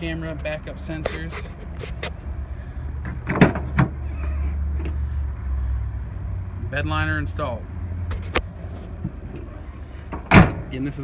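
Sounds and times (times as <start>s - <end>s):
steady low rumble: 0.0s - 11.0s
tailgate metallic clack: 3.0s - 4.0s, 10.1s - 10.7s
tailgate clunk: 3.0s - 5.0s, 10.1s - 10.7s.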